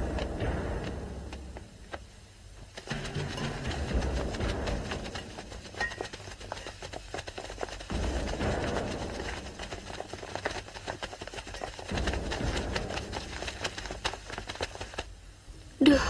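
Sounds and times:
scuffling feet: 0:00.0 - 0:15.1.

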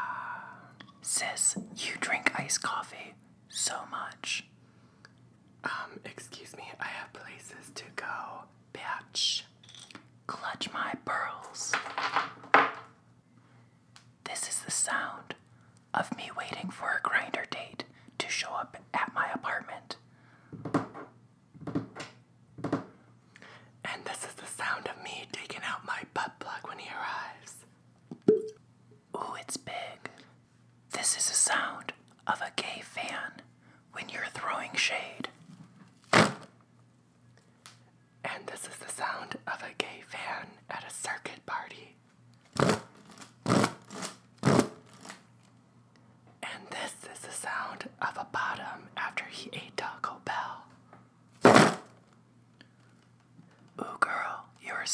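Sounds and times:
person whispering: 0:00.0 - 0:04.5, 0:05.6 - 0:09.6, 0:10.3 - 0:11.7, 0:14.3 - 0:15.4, 0:16.0 - 0:20.0, 0:23.9 - 0:27.6, 0:29.2 - 0:30.2, 0:30.9 - 0:35.3, 0:38.3 - 0:42.0, 0:46.4 - 0:50.7, 0:53.8 - 0:54.9.

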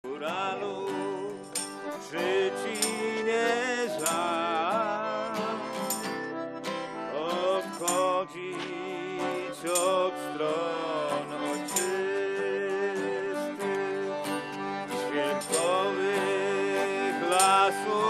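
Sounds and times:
accordion: 0:00.0 - 0:18.0
fiddle melody: 0:00.0 - 0:18.0
strummed acoustic guitar: 0:00.1 - 0:18.0.

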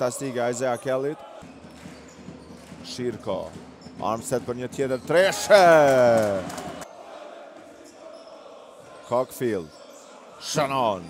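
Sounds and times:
faint arena crowd and court noise: 0:00.0 - 0:11.0.

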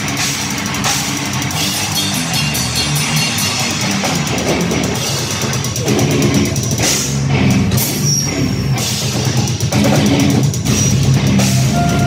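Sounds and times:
crashing cymbals: 0:00.0 - 0:04.4
bass guitar: 0:00.0 - 0:12.0
distorted electric guitars: 0:00.0 - 0:12.0
pounding drum kit: 0:00.0 - 0:12.0.

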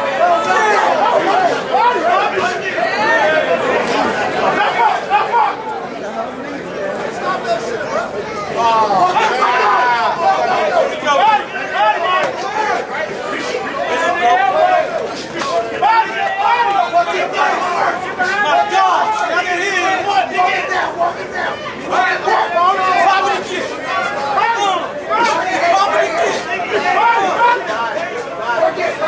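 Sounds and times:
crowd shouting: 0:00.0 - 0:29.0
spectators talking and calling out: 0:00.0 - 0:29.0.

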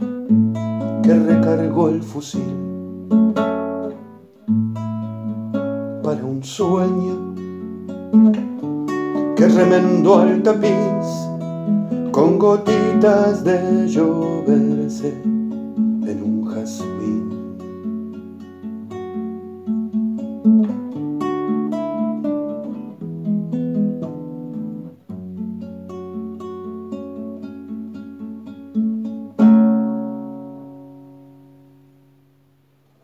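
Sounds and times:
classical guitar playing: 0:00.0 - 0:33.0.

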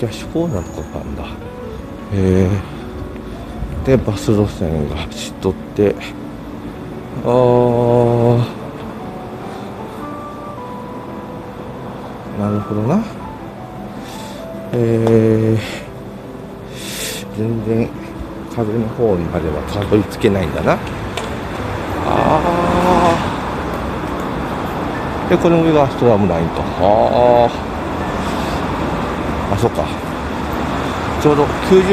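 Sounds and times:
steady traffic noise: 0:00.0 - 0:31.9
vehicle passing: 0:18.0 - 0:31.9
man's drawn-out aah: 0:22.0 - 0:23.4.

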